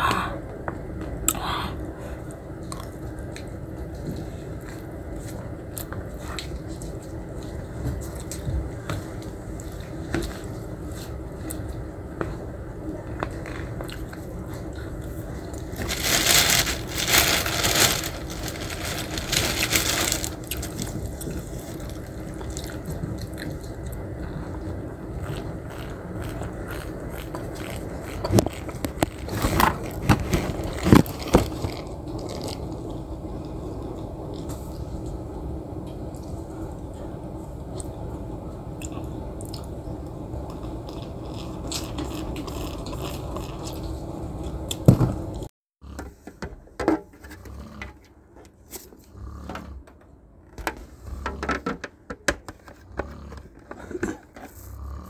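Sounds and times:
low room hum: 0.0 - 55.0
chewing: 20.4 - 34.6, 38.8 - 44.8.

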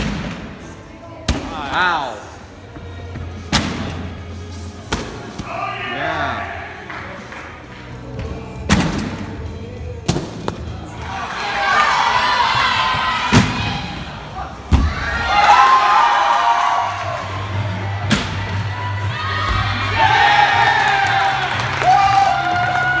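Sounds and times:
crowd cheering and calling out: 10.8 - 23.0.

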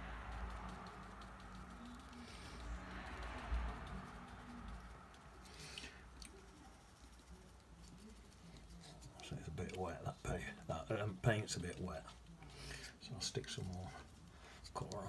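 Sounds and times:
brush scrape: 0.0 - 10.4, 11.6 - 15.0
brush scratching on paper: 0.0 - 15.0.

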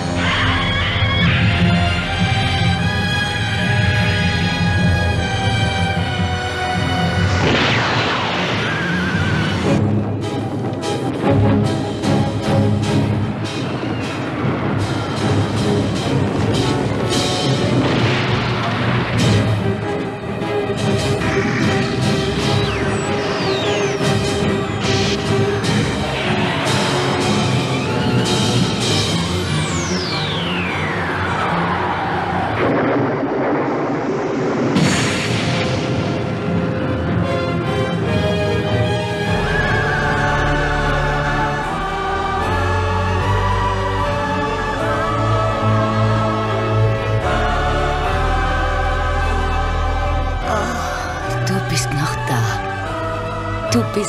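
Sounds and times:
orchestral trailer music: 0.0 - 54.0
sudden rush of noise: 7.1 - 9.8.

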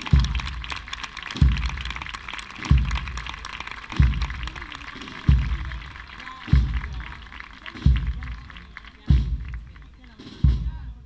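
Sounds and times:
bass drum beating a march: 0.0 - 11.0
large crowd noise: 0.0 - 11.0.

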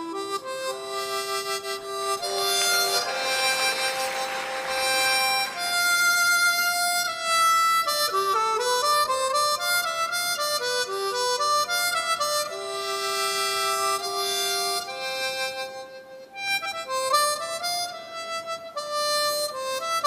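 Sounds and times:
solo harmonica melody: 0.0 - 20.0.

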